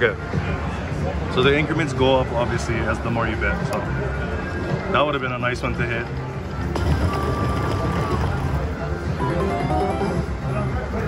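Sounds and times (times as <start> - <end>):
casino background hum: 6.1 - 11.0
electronic slot machine music: 6.7 - 11.0.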